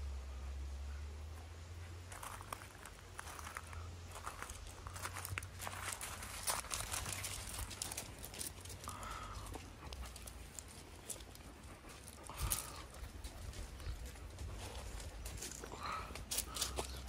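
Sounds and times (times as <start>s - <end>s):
dogs moving on gravel: 2.1s - 17.0s.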